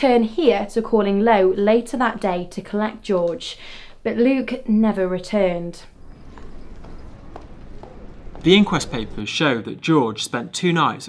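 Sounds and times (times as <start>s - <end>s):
low hum: 0.0s - 9.3s
horse hooves clip-clopping: 6.0s - 9.2s.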